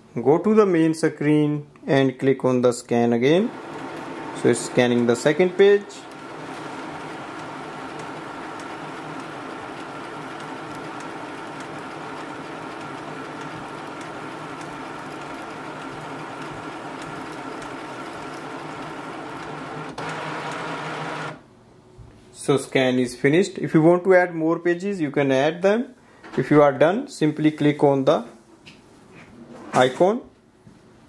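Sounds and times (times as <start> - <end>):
scanner motor whirr: 3.4 - 21.4.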